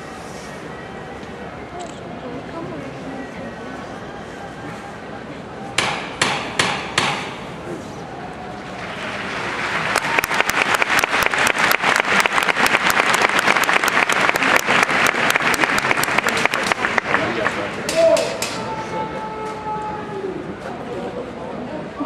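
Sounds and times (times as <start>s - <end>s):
sharp knocks on wood: 5.8s - 7.4s
crowd applause: 8.7s - 18.1s.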